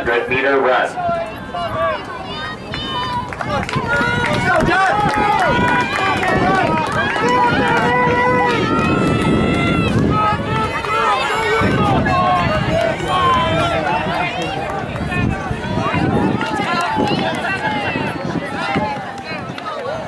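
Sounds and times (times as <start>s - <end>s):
spectators shouting encouragement: 0.9s - 20.0s.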